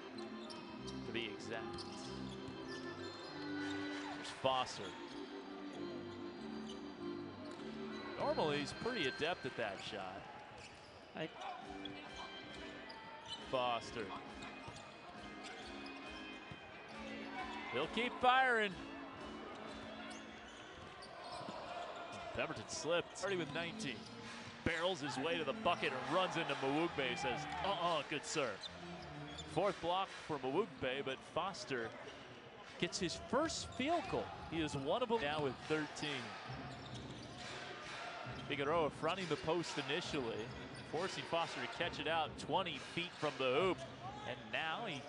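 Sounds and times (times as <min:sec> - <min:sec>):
faint arena background noise: 0:00.0 - 0:45.0.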